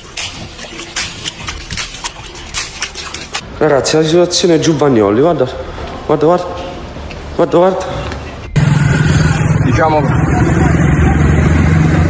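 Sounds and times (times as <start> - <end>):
aquarium water sloshing and splashing: 0.0 - 3.6.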